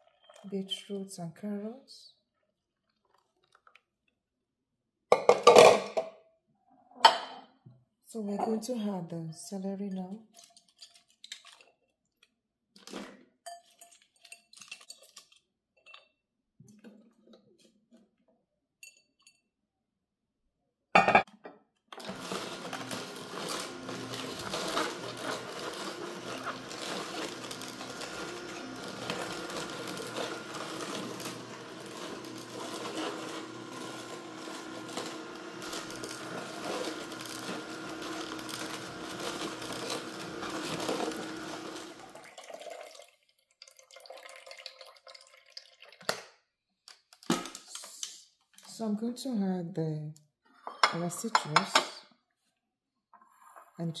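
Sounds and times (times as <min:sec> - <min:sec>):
juicer motor hum with crunching: 0:21.9 - 0:43.0.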